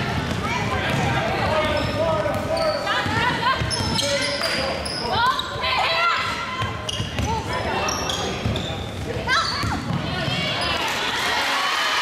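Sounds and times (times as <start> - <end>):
basketball dribbling: 0.0 - 4.2
voices talking in echoing hall: 0.0 - 12.0
sneakers squeaking: 0.1 - 11.2.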